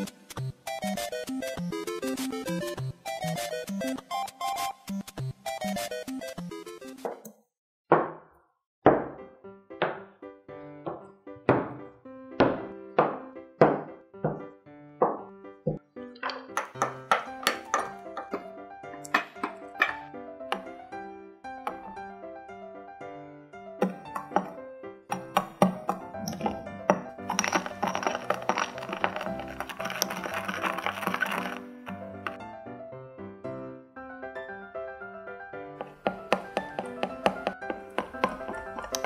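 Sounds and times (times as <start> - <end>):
background music: 0.0 - 7.2, 9.0 - 39.0
knife chopping on wooden board: 23.8 - 26.6, 35.8 - 39.0
metal spatula scraping glass bowl: 27.2 - 32.4.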